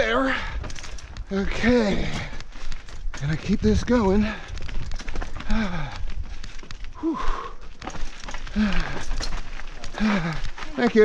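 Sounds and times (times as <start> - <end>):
mountain bike rattling over rocks: 0.0 - 7.0, 7.6 - 11.0
wind rumbling on microphone: 0.0 - 11.0.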